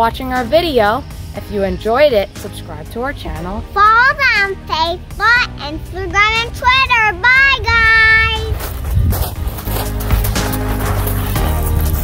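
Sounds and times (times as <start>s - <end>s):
child calling out in sing-song: 5.3s - 8.6s.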